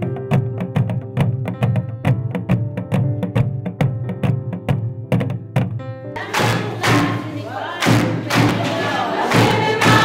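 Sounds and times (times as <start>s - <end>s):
drums in a steady beat: 0.0s - 10.0s
group of voices chanting: 6.2s - 10.0s.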